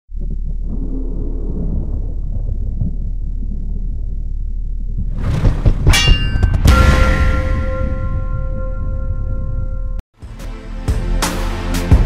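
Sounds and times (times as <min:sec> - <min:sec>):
low rumbling drone: 0:00.1 - 0:10.0.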